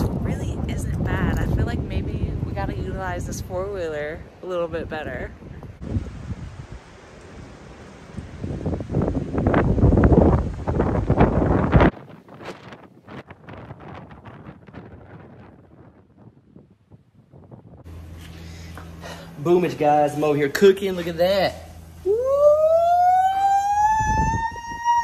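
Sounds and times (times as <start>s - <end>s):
gusty wind buffeting microphone: 0.0s - 18.0s, 23.7s - 25.0s.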